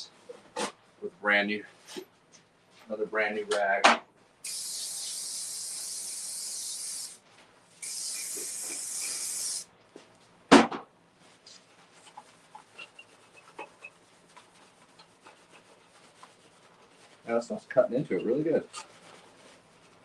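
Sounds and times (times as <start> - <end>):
aerosol can spraying: 4.4 - 7.2, 7.8 - 9.7.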